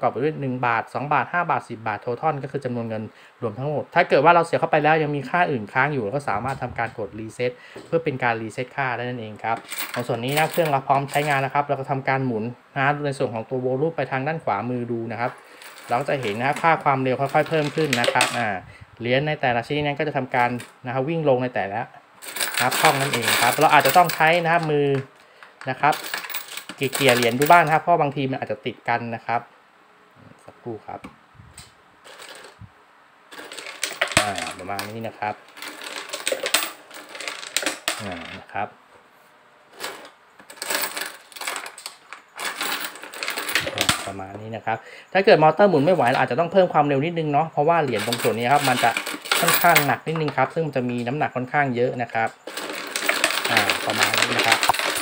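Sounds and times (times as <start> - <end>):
coins clinking on plastic: 9.6 - 11.5, 15.4 - 18.4, 22.2 - 27.8, 32.0 - 32.6, 33.3 - 38.4, 39.7 - 44.2, 45.7 - 46.3, 47.9 - 51.1, 52.4 - 55.0.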